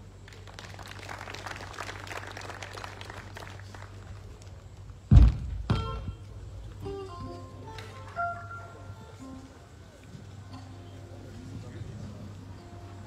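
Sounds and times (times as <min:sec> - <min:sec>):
heavy deep thumps: 0:05.1 - 0:06.2.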